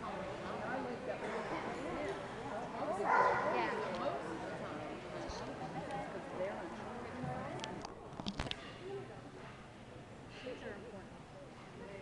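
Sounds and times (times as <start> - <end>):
crowd chatter: 0.0 - 12.0
dog barking: 3.1 - 3.6.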